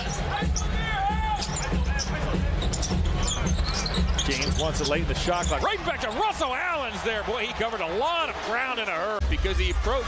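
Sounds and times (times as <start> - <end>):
crowd noise: 0.0 - 10.0
sneakers squeaking on court: 1.4 - 6.2.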